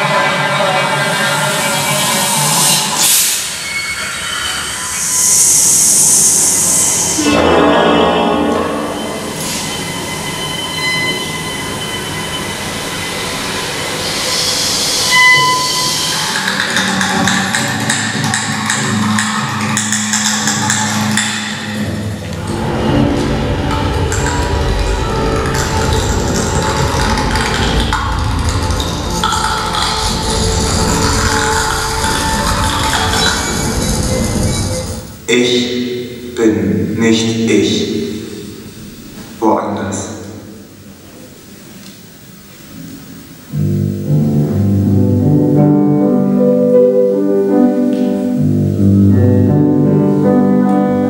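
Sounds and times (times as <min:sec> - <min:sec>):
chamber ensemble experimental music: 0:07.0 - 0:15.0.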